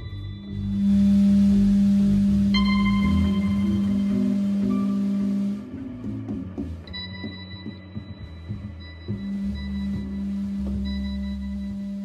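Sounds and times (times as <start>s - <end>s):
long held guitar note: 0.0s - 5.9s
bass line: 0.0s - 12.0s.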